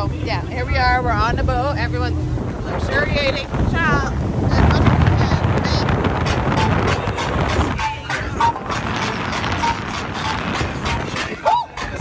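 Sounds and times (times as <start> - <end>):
motorboat running: 0.0 - 12.0
water noise: 0.0 - 12.0
wind buffeting microphone: 0.0 - 12.0.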